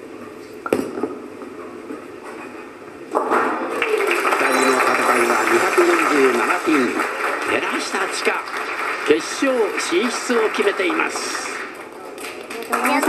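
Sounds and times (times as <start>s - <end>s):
crowd cheering and applauding: 3.6s - 13.0s.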